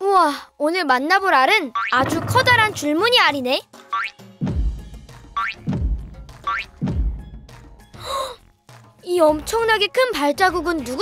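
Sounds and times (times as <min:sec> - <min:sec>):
deep heavy thump: 0:02.0 - 0:03.4
children's music: 0:02.0 - 0:03.8.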